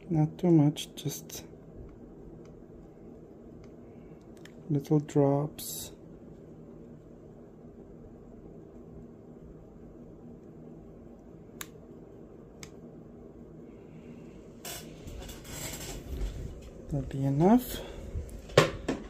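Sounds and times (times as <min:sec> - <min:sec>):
faint steady hum: 0:00.0 - 0:19.0.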